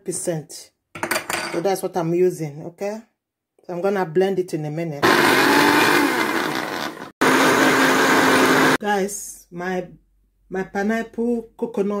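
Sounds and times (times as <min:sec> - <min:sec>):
blender motor whirring: 0:05.0 - 0:08.8.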